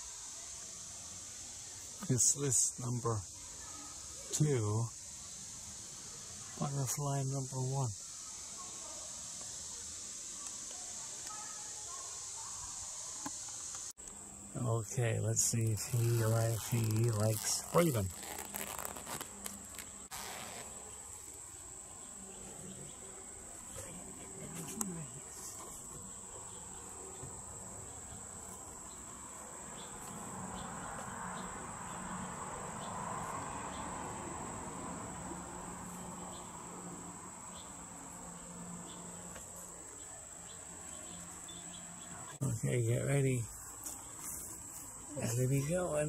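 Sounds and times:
high-pitched insect trill: 0:00.0 - 0:46.0
mesh cage rustling and zipper: 0:15.8 - 0:21.0.

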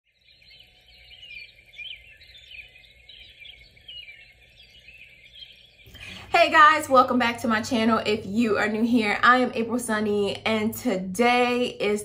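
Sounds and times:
birds chirping: 0:00.1 - 0:12.0.

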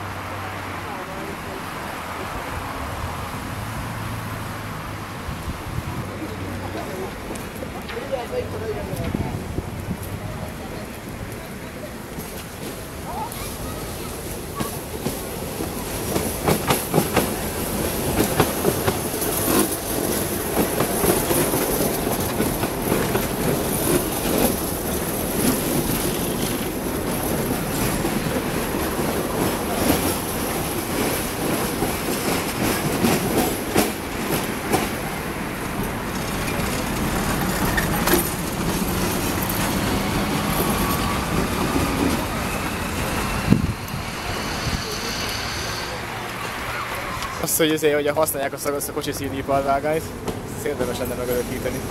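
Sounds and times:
tram rumbling past: 0:00.0 - 0:51.9
wheels clacking over rail joints: 0:05.7 - 0:45.4, 0:46.1 - 0:51.9.

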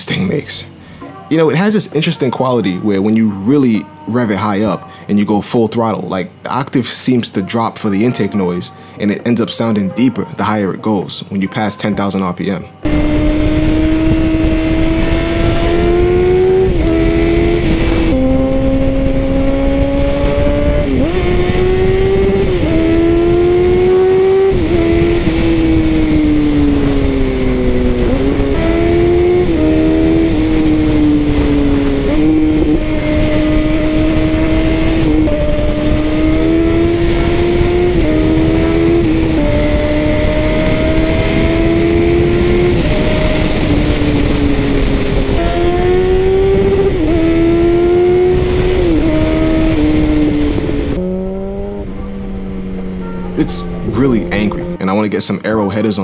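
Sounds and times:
motorcycle engine revving: 0:12.8 - 0:55.0.

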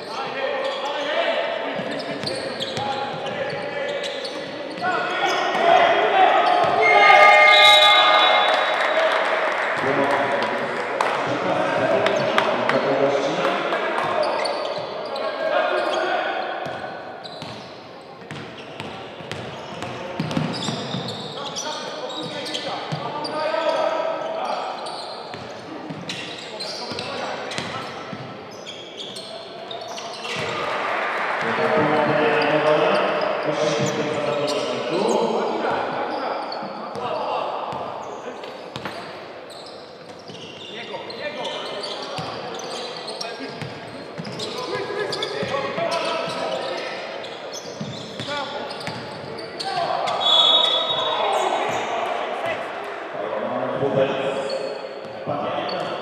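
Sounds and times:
voices of players and spectators: 0:00.0 - 0:56.0.

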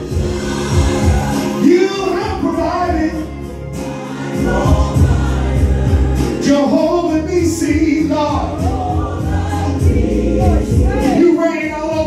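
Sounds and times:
choir voices: 0:00.0 - 0:12.0
music with bass line: 0:00.0 - 0:12.0
man singing into microphone: 0:00.9 - 0:03.3, 0:06.2 - 0:12.0.

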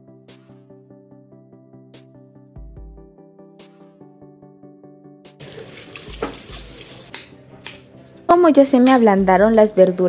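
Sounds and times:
background music: 0:00.0 - 0:10.0
tap water running into sink: 0:05.4 - 0:07.3.

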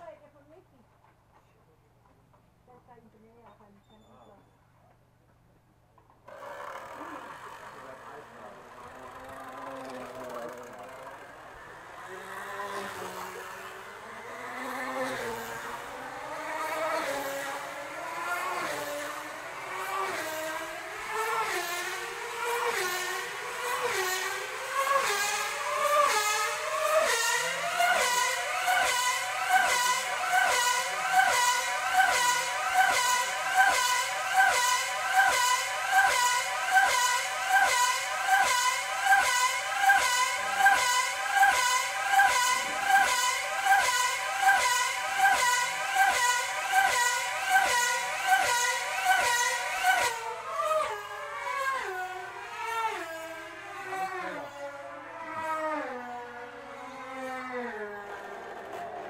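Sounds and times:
model car engine whining past: 0:06.3 - 0:59.0.

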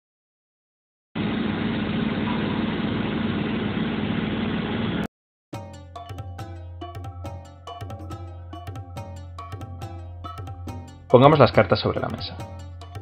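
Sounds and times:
machine running noise: 0:01.2 - 0:05.1
music with percussion: 0:05.6 - 0:13.0.

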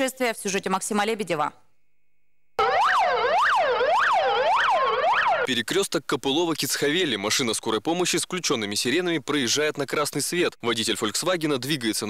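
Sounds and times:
siren slowly rising: 0:02.6 - 0:05.5
siren yelping: 0:02.6 - 0:05.5.

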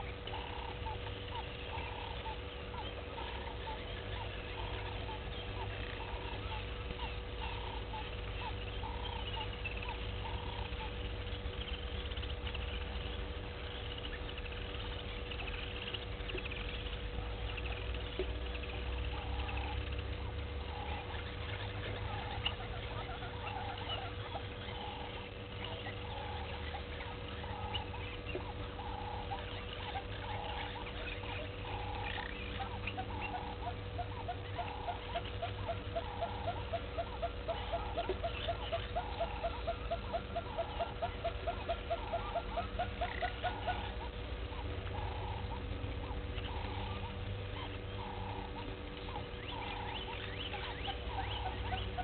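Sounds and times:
rising clicking calls: 0:00.0 - 0:52.0
steady low hum: 0:00.0 - 0:52.0.

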